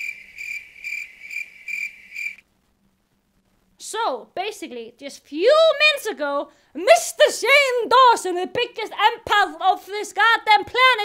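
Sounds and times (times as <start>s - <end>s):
crickets chirping: 0.0s - 2.4s.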